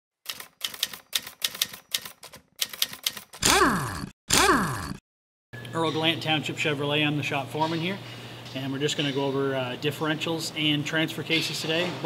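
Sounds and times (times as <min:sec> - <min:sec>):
typewriter typing: 0:00.2 - 0:03.4.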